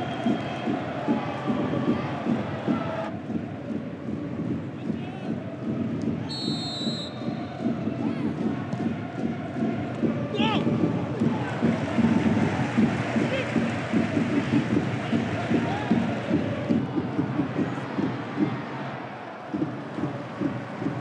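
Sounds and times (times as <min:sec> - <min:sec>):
referee's whistle blast: 0:06.3 - 0:07.2.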